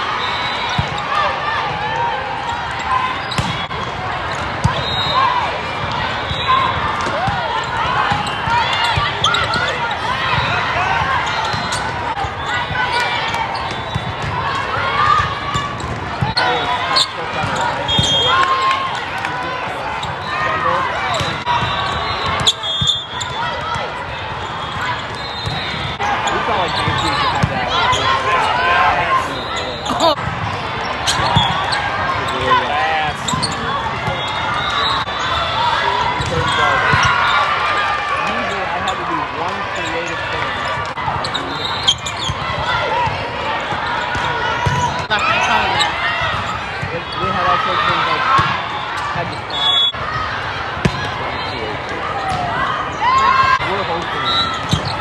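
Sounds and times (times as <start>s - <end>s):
people calling out and chattering: 0.0s - 55.0s.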